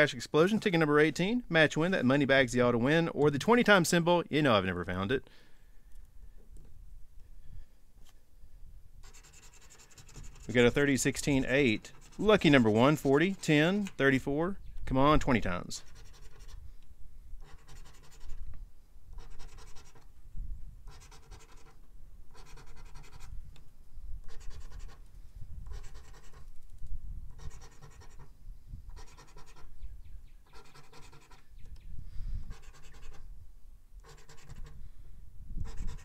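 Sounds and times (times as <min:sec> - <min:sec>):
coin scratching lottery ticket: 0:09.0 - 0:13.9, 0:15.8 - 0:16.6, 0:17.4 - 0:18.4, 0:19.2 - 0:20.0, 0:20.9 - 0:23.3, 0:24.3 - 0:25.0, 0:25.7 - 0:26.5, 0:27.4 - 0:28.3, 0:28.9 - 0:29.7, 0:30.5 - 0:31.4, 0:32.5 - 0:33.2, 0:34.0 - 0:34.8, 0:35.6 - 0:36.0.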